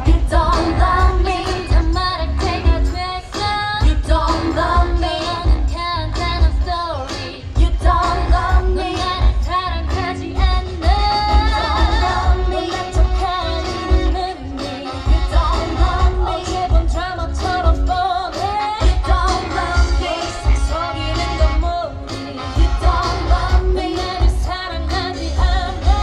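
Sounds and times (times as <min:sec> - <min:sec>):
heavy pulsing bass beat: 0:00.0 - 0:03.1, 0:03.8 - 0:06.8, 0:07.5 - 0:14.2, 0:15.1 - 0:18.0
pop song with female vocals: 0:00.0 - 0:26.0.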